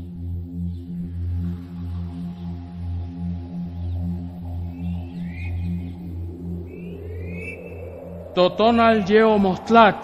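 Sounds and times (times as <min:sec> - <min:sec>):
ambient electronic music: 0:00.0 - 0:10.0
pulsing low bass tone: 0:00.0 - 0:10.0
high rising chirps: 0:03.6 - 0:10.0.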